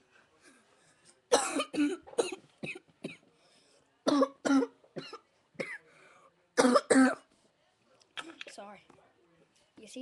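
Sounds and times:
boy coughing: 0:01.3 - 0:03.2, 0:06.6 - 0:07.2.

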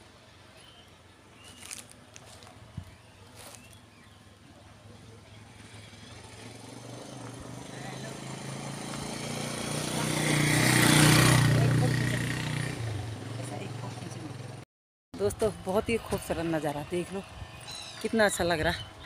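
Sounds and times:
passing engine hum: 0:01.6 - 0:14.6.

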